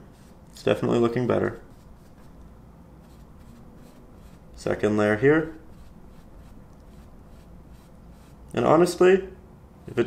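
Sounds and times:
paintbrush scratching on canvas: 0.0 - 2.4, 3.0 - 8.5.

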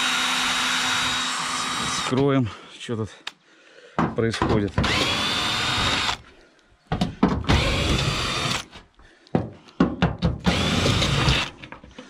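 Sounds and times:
drill motor whine: 0.0 - 2.1, 4.8 - 6.2, 7.5 - 8.6, 10.5 - 11.5.

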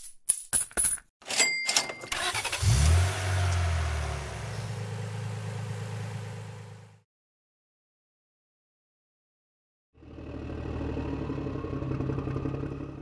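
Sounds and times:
coins clinking: 0.0 - 2.4
cash register beep: 1.2 - 2.6
small car engine starting: 2.1 - 7.0, 10.0 - 13.0.

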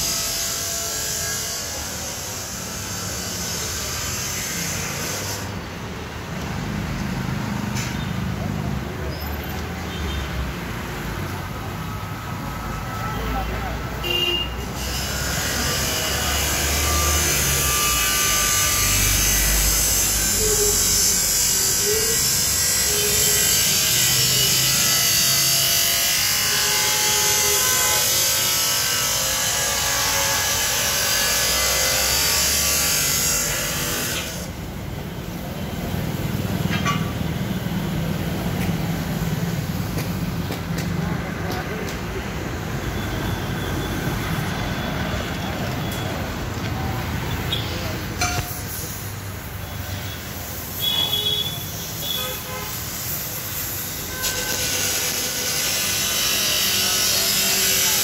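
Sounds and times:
low traffic rumble: 0.0 - 58.0.

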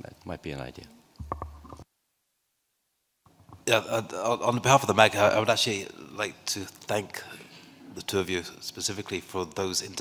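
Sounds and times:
faint microphone clicks: 1.1 - 1.9, 3.2 - 3.7.

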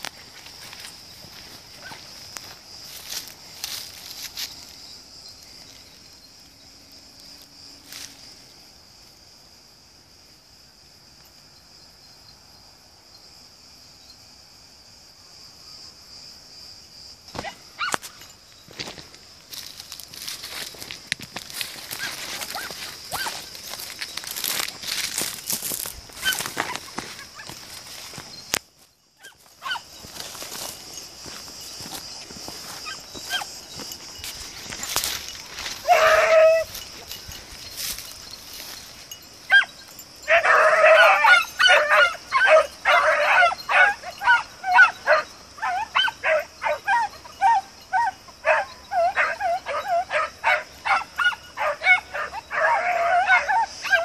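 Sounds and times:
hounds yelping barks: 1.7 - 2.1, 17.4 - 18.1, 21.6 - 28.2, 29.2 - 30.6, 32.6 - 33.8, 34.6 - 54.0
rustling in brush: 18.9 - 28.5, 29.4 - 39.4
hound baying: 21.9 - 23.5, 26.2 - 27.7, 29.2 - 30.3, 35.5 - 37.9, 38.8 - 54.0.

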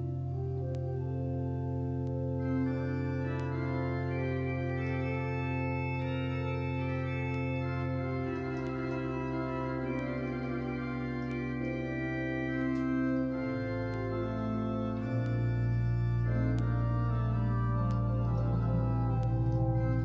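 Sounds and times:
slow gentle organ music: 0.0 - 20.0.

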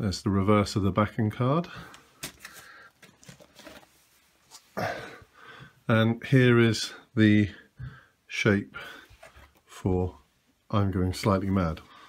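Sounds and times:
record sleeve rustling: 1.9 - 4.8, 9.1 - 9.7.

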